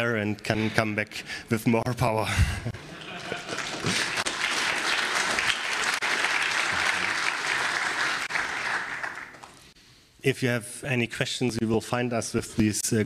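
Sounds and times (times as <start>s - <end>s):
audience applauding: 3.0s - 9.7s.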